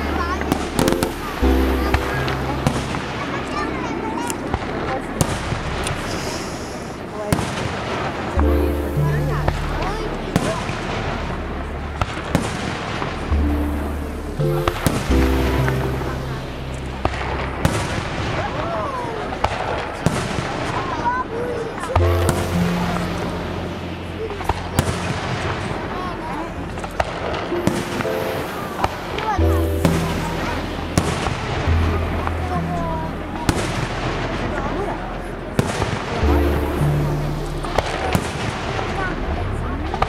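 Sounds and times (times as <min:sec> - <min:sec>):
fireworks bangs: 0:00.0 - 0:32.4, 0:33.4 - 0:37.0
music with sustained notes: 0:00.0 - 0:40.0
fireworks crackle: 0:24.2 - 0:31.9.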